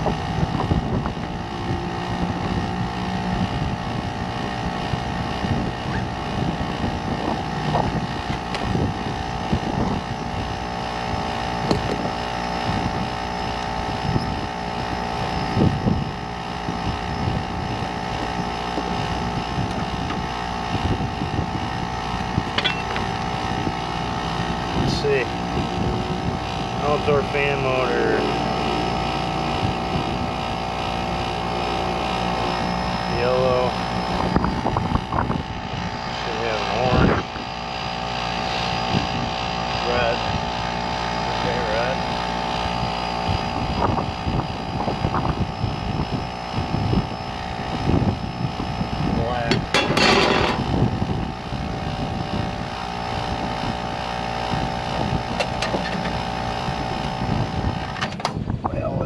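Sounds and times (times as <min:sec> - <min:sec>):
condenser unit humming and whining: 0:00.0 - 0:59.0
wind noise on microphone: 0:00.0 - 0:59.0.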